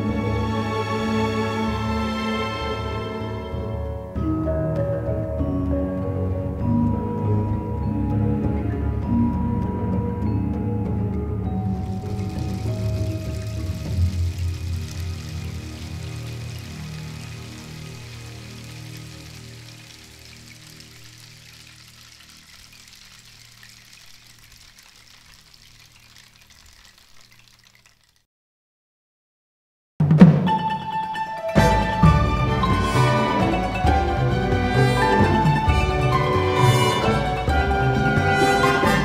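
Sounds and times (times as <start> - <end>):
gamelan ensemble music: 0.0 - 20.0, 30.2 - 39.0
gongs and metallophones ringing: 30.5 - 39.0.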